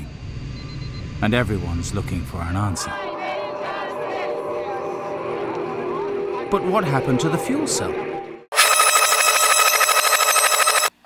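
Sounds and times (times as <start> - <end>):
electric bell ringing: 8.5 - 11.0.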